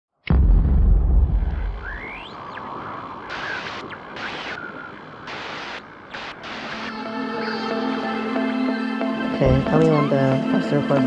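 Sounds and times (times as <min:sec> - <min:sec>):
boom: 0:00.2 - 0:02.4
static-like hiss: 0:01.6 - 0:08.2.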